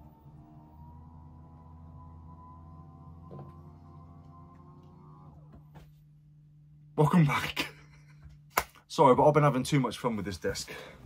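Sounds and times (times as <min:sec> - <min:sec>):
electric desk motor whirring: 0:00.0 - 0:06.7.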